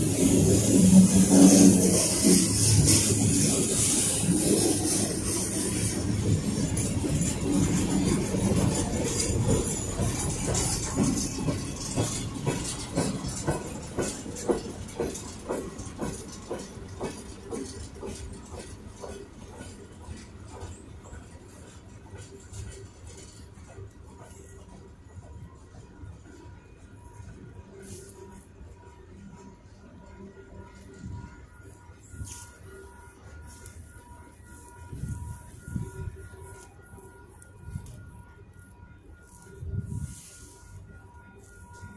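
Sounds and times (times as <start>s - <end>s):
distant train rumble: 0.0s - 41.9s
train wheels clicking over rail joints: 0.0s - 41.9s.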